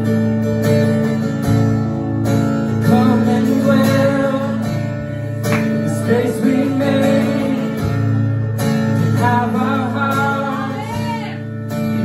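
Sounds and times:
acoustic guitar: 0:00.0 - 0:12.0
bass guitar: 0:00.0 - 0:12.0
electric guitars: 0:00.0 - 0:12.0
person singing: 0:09.1 - 0:12.0.

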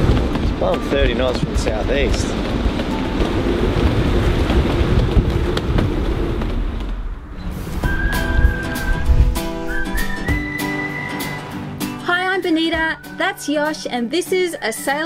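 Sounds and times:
wind buffeting microphone: 0:00.0 - 0:11.5
whistled tune over plucked strings: 0:07.8 - 0:13.7, 0:14.3 - 0:15.0.

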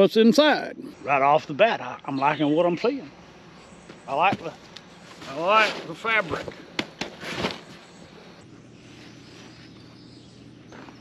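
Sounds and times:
faint outdoor background noise: 0:00.0 - 0:11.0
fabric and cardboard box rustling: 0:04.3 - 0:08.0.

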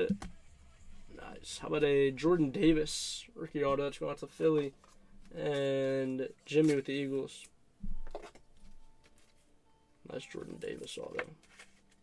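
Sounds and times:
plastic card holder rustling: 0:10.7 - 0:12.0.

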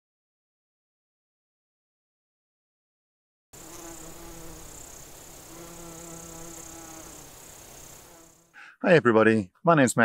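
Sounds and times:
bee buzzing: 0:03.6 - 0:08.6
steady high hiss: 0:03.6 - 0:08.7.

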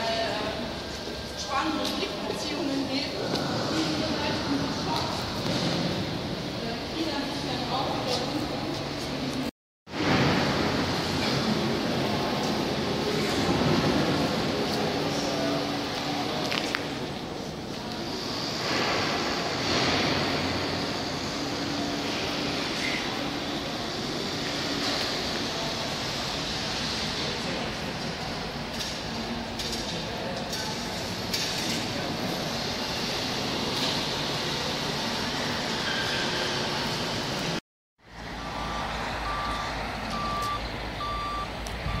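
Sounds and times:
building site noise in concrete hall: 0:00.0 - 0:42.0
reversing alarm beeping: 0:38.3 - 0:42.0.

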